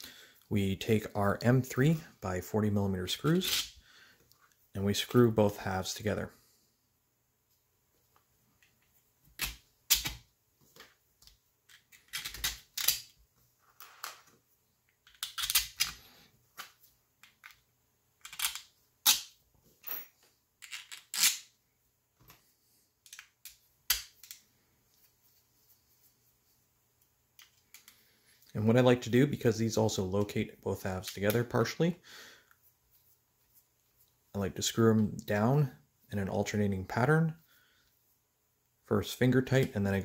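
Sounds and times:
screws and plastic parts clicking: 11.7 - 13.2, 13.8 - 16.0, 18.2 - 19.3.

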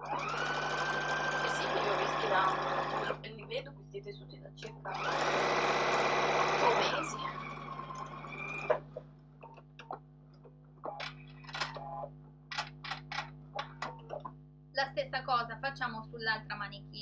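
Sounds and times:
electric sewing machine stitching: 0.0 - 3.3, 4.8 - 8.8.

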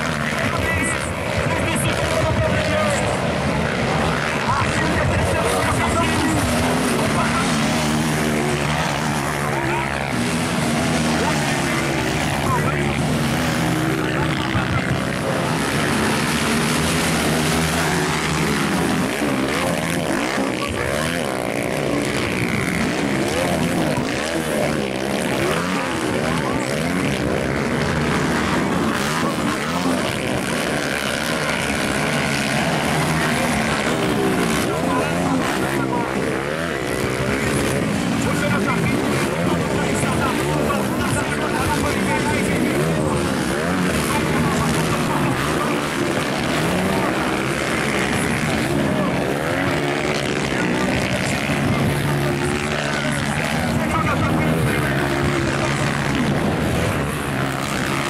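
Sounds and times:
motocross bike engines revving: 0.0 - 58.0.

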